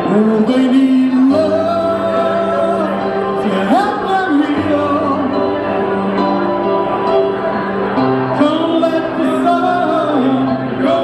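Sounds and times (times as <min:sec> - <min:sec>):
man singing into microphone: 0:00.0 - 0:06.1, 0:08.2 - 0:11.0
piano accompaniment: 0:00.0 - 0:11.0.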